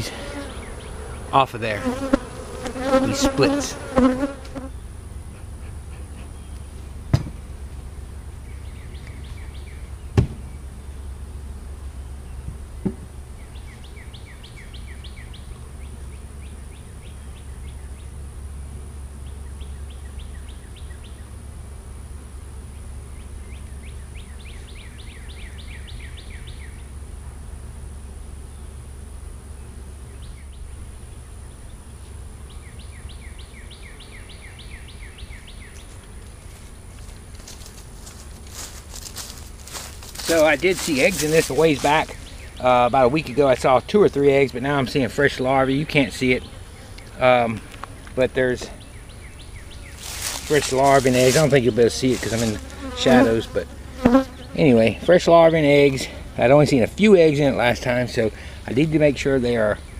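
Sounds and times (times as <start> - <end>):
honeybees buzzing: 0.0 - 59.9.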